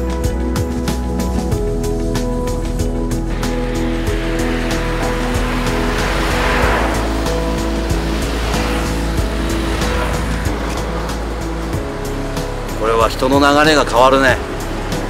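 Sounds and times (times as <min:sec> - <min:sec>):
background music with held notes: 0:00.0 - 0:15.0
road traffic noise: 0:00.0 - 0:15.0.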